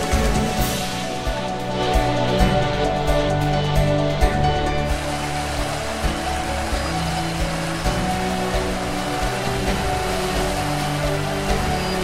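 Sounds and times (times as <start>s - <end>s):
background music with held notes: 0.0s - 12.0s
river rushing over rapids: 4.7s - 12.0s.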